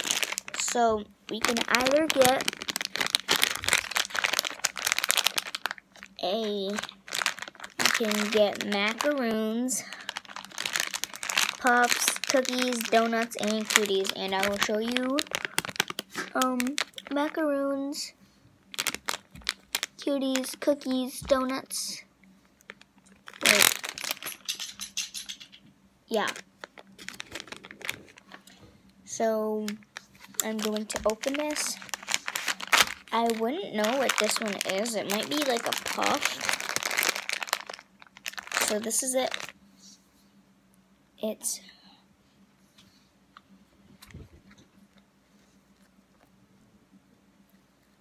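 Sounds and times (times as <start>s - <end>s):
plastic packet crinkling: 0.0s - 17.4s, 18.7s - 21.6s, 22.6s - 25.5s, 26.1s - 28.5s, 29.6s - 39.6s.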